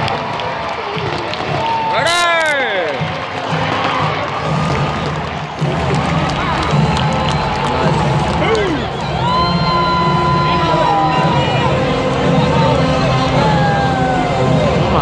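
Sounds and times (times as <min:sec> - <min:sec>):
crowd shouts: 0:00.0 - 0:15.0
crowd talking and calling out: 0:00.0 - 0:15.0
music over sound system: 0:01.4 - 0:15.0.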